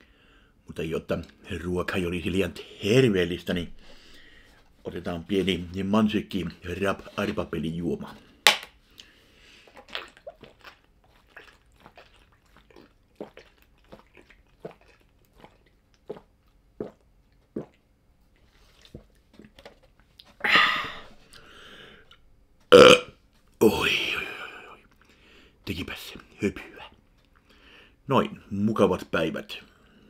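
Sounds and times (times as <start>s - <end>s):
person gulping a drink: 8.9s - 25.2s
breathy sounds: 20.4s - 22.2s.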